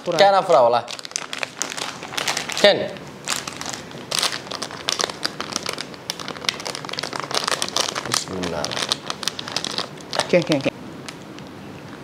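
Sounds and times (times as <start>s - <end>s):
plastic snack packet crinkling: 0.0s - 10.7s.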